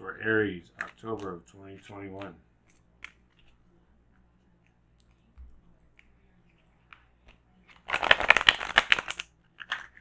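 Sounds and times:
cards being shuffled: 0.7s - 3.6s, 5.9s - 10.0s.

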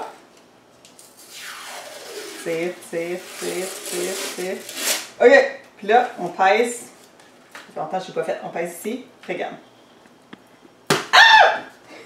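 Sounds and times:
person crying out startled: 11.1s - 11.7s.

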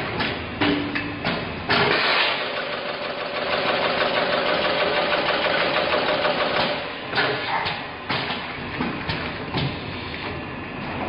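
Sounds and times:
sharp machine clacks: 1.8s - 6.9s.

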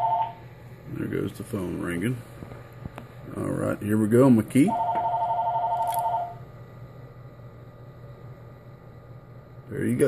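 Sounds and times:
electronic two-tone telephone ring: 0.0s - 0.4s, 4.7s - 6.4s
low steady hum: 0.0s - 10.0s.

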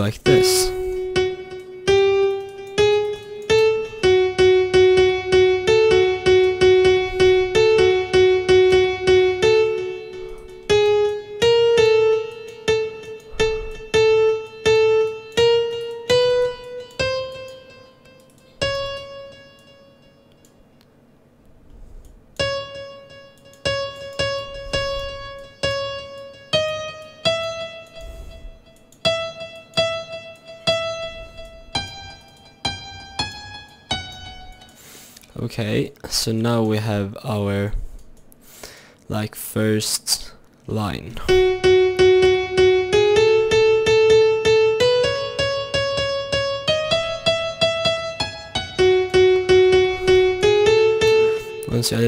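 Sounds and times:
single piano notes: 0.0s - 34.8s.

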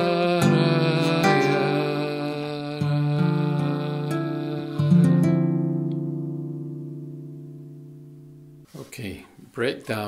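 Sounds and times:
nylon-string guitar chord ringing: 0.1s - 8.7s.

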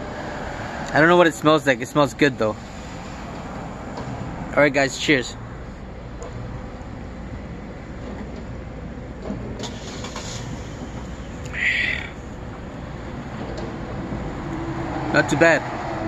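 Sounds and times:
street traffic rumble: 0.0s - 16.0s.

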